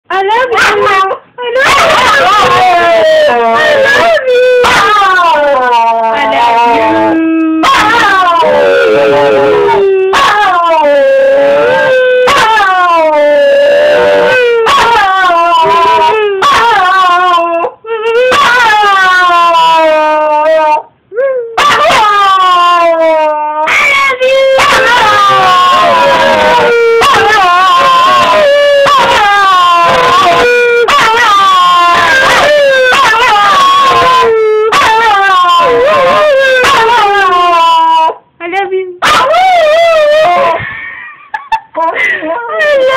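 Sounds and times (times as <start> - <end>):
dog howling: 0.5 - 38.2, 39.0 - 40.6.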